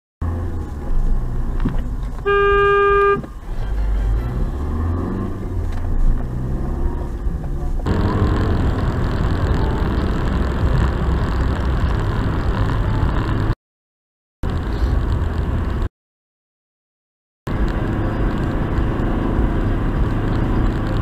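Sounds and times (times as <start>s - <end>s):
engine and tyre rumble: 0.2s - 13.6s, 14.4s - 15.9s, 17.5s - 21.0s
hissy tyre and road noise: 0.2s - 13.6s, 14.4s - 15.9s, 17.5s - 21.0s
car horn blast: 2.2s - 3.3s.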